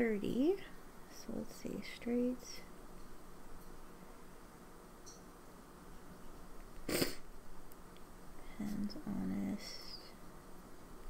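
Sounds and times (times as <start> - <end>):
person sniffing: 6.9 - 7.2.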